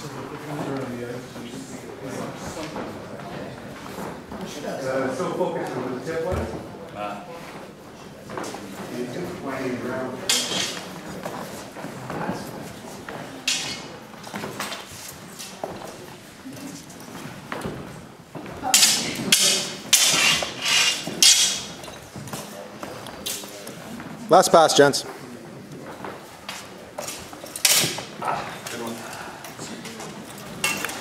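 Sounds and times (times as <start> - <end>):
sword strikes: 18.7 - 21.7
low voices: 28.1 - 31.0.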